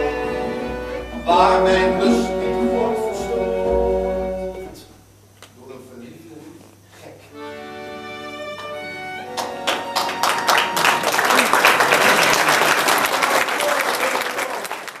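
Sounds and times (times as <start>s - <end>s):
folk band chord: 0.0s - 5.0s
audience applause: 9.3s - 15.0s.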